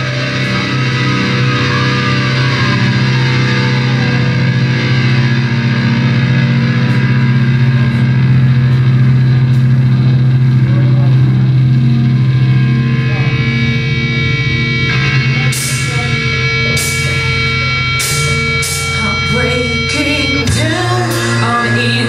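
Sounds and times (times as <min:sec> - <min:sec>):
droning distorted guitar and bass: 0:00.0 - 0:22.0.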